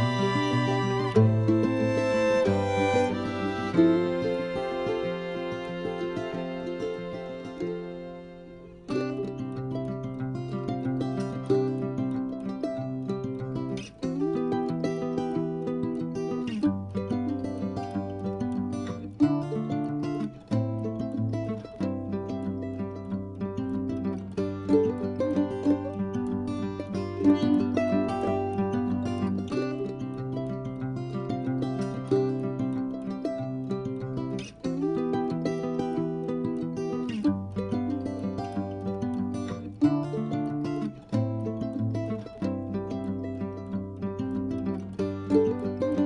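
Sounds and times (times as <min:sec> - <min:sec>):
plucked string instrument music: 0:00.0 - 0:46.0.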